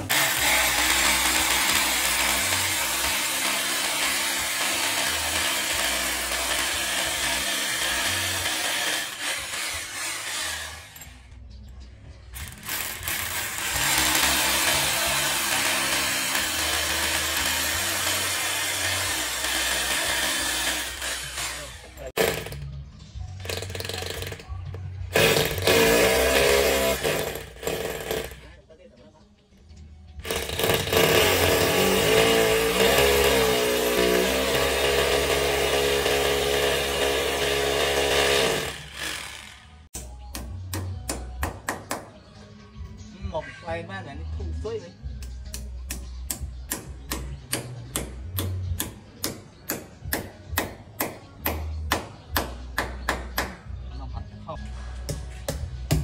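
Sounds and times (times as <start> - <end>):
hammer drill boring into masonry: 0.0 - 11.2, 12.4 - 22.6, 25.2 - 28.5, 30.2 - 39.9.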